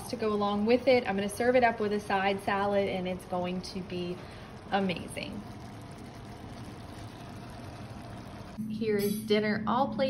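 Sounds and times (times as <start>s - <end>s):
food simmering hiss: 0.0s - 8.6s.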